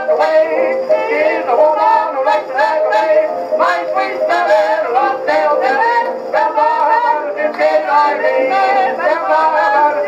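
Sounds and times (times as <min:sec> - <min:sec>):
hot jazz band on phonograph: 0:00.0 - 0:10.0.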